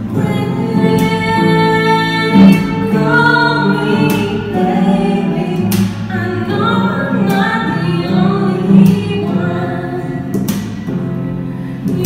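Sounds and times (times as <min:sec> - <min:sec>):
woman singing pop ballad: 0:00.0 - 0:11.0
acoustic guitar: 0:00.0 - 0:12.0.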